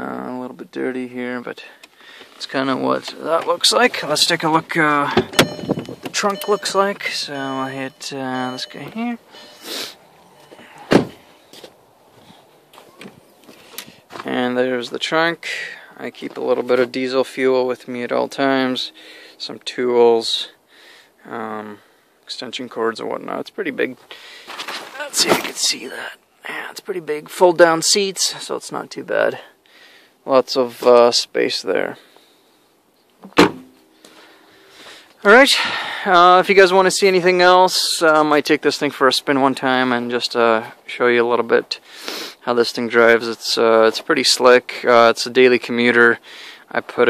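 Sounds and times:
car trunk lid slamming: 5.1s - 6.1s, 10.8s - 11.2s, 33.2s - 33.8s
car body panel thump: 10.9s - 11.2s, 33.2s - 33.8s.

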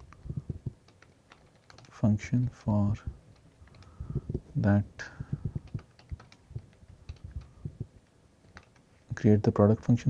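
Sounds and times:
computer keyboard typing: 0.0s - 2.0s, 3.3s - 4.3s, 5.4s - 7.6s, 8.5s - 8.9s.

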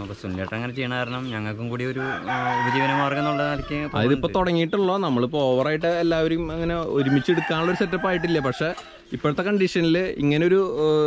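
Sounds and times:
rooster crowing: 1.9s - 4.2s, 7.0s - 9.0s.

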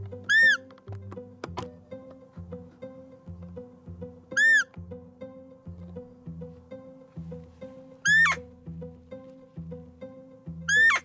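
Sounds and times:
music with plucked beat: 0.0s - 11.0s
high-pitched squeaky calls: 0.2s - 0.7s, 4.3s - 4.7s, 8.0s - 8.4s, 10.7s - 11.0s.

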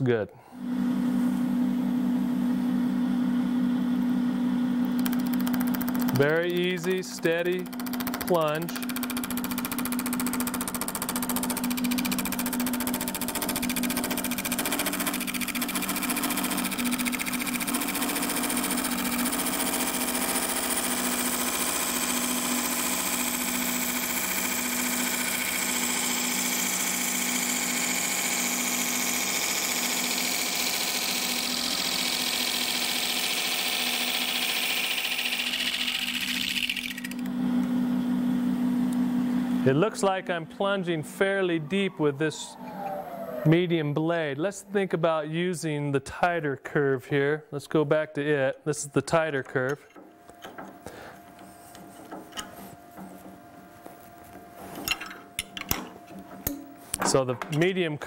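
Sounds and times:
lathe motor humming: 4.0s - 38.0s.

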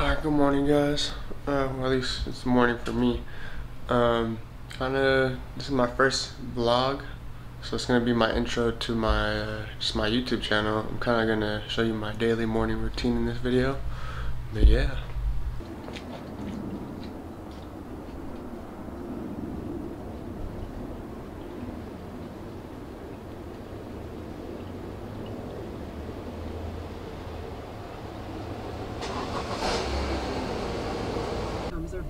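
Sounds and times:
car engine idling: 22.0s - 31.8s.

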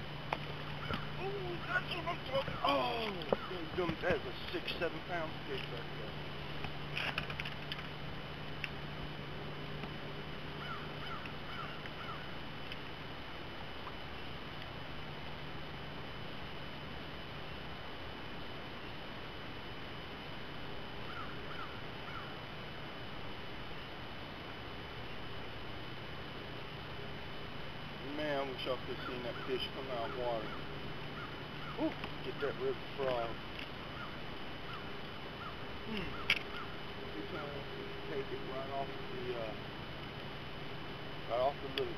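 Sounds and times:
faint low hum: 0.0s - 41.9s
outdoor background hiss: 0.0s - 41.9s.

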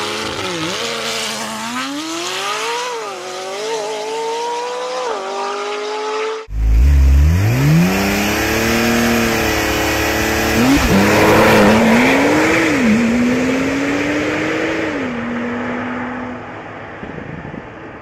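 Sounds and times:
car engine accelerating hard: 0.0s - 16.5s.

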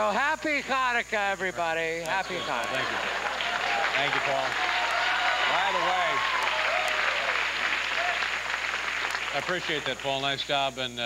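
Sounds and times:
voices: 0.0s - 11.0s
audience applauding: 2.1s - 10.6s.

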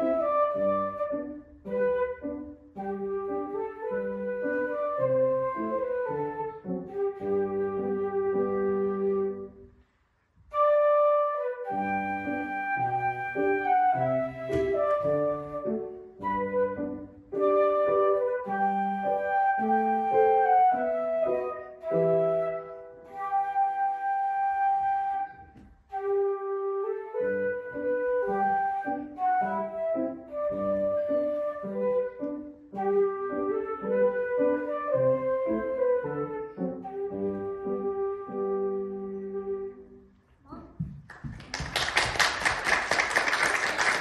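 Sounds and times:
flute melody: 0.0s - 9.7s, 10.4s - 40.2s
piano accompaniment: 0.0s - 9.7s, 10.5s - 40.2s.

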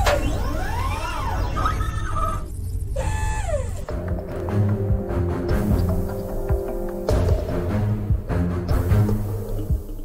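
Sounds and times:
electronic sci-fi sound effects: 0.0s - 3.7s
steady low rumble: 2.1s - 10.0s.

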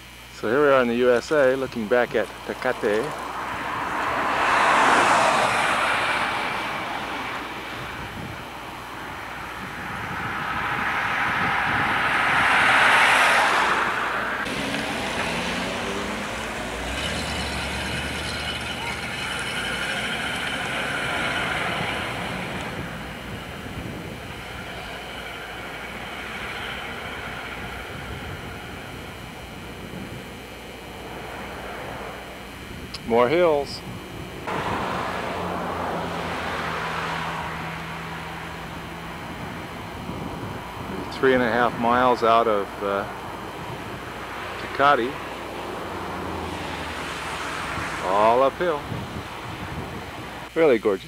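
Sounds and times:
vehicles passing by: 0.0s - 50.5s
steady road noise: 0.0s - 51.0s.

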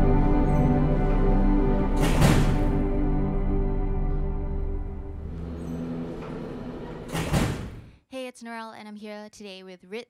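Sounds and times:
intro music: 0.0s - 6.8s.

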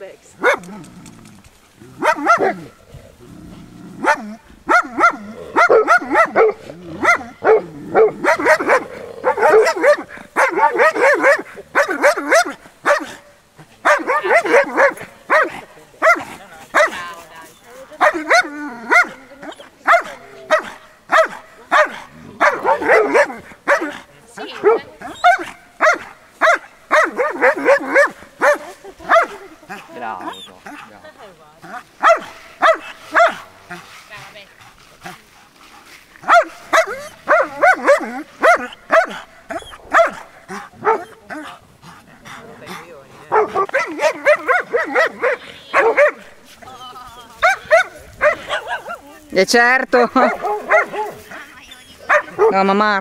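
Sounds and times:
dog barking: 0.4s - 0.7s, 2.0s - 2.8s, 4.0s - 17.1s, 18.0s - 30.9s, 31.7s - 33.5s, 36.2s - 41.2s, 43.3s - 46.3s, 47.4s - 49.2s, 50.2s - 51.4s, 52.0s - 52.7s.

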